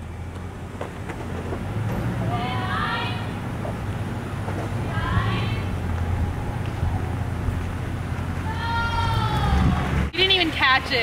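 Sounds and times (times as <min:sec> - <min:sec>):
truck engine rumble: 0:00.0 - 0:11.0.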